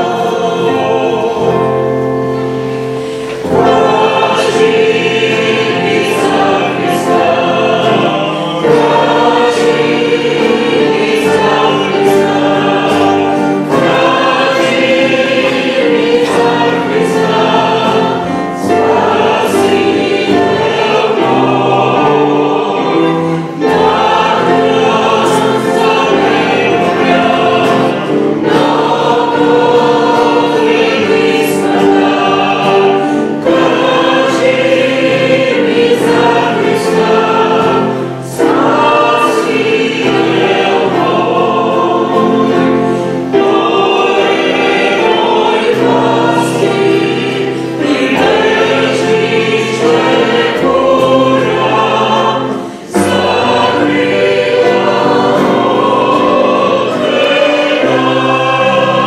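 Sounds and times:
group singing worship song: 0.0 - 59.0.

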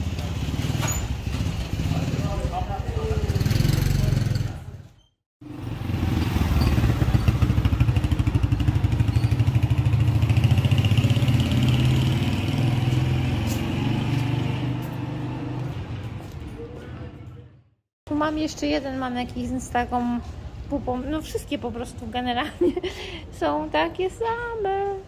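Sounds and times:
small motorcycle engine running: 5.5 - 12.6.

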